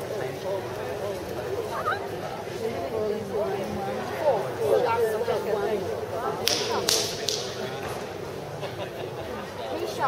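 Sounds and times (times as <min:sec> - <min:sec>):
murmur of voices: 0:00.0 - 0:10.0
sharp slaps: 0:06.4 - 0:07.7.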